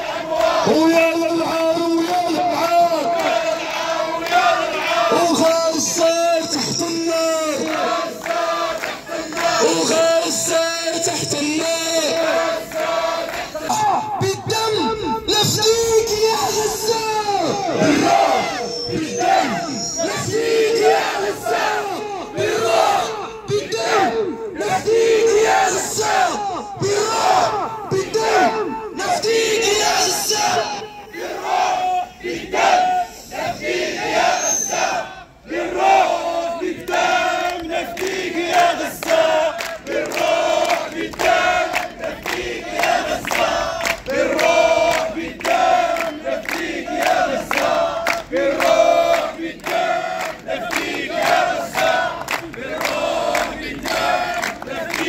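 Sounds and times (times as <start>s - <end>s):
crowd chanting slogans: 0.0s - 16.8s, 17.4s - 55.0s.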